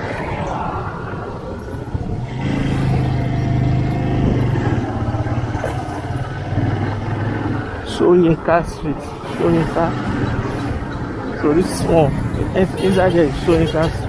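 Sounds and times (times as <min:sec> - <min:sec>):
road and wind noise: 0:00.0 - 0:14.0
motorcycle engine running: 0:02.2 - 0:07.8.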